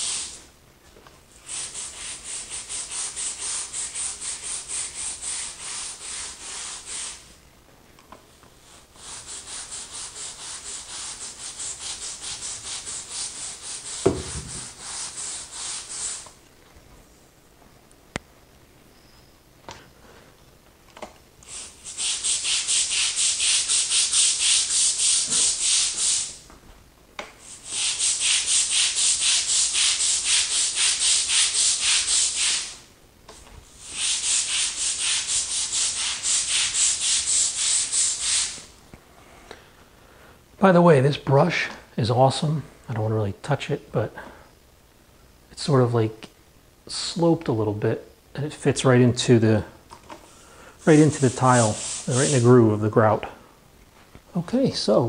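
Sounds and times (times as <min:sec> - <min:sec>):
brush scrubbing tile grout: 0:01.4 - 0:07.3, 0:08.7 - 0:16.3, 0:21.5 - 0:26.4, 0:27.5 - 0:32.8, 0:33.8 - 0:38.6, 0:50.8 - 0:52.8.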